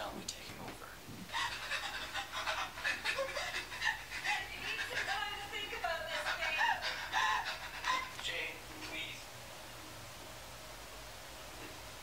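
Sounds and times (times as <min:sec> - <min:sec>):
quick panting breaths: 0:01.3 - 0:08.3.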